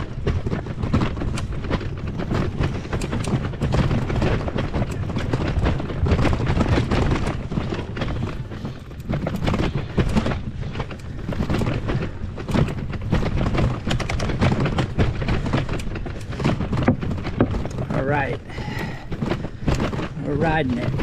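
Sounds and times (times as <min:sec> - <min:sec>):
bicycle rattling over stone slabs: 0:00.0 - 0:21.0
wind buffeting the microphone: 0:00.0 - 0:21.0.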